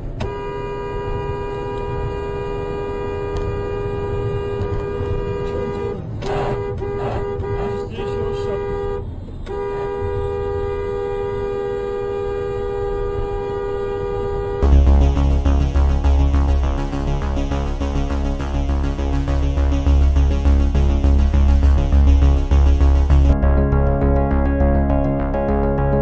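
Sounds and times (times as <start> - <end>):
road and engine rumble: 0.0 - 26.0
car horn blasts: 0.1 - 20.7.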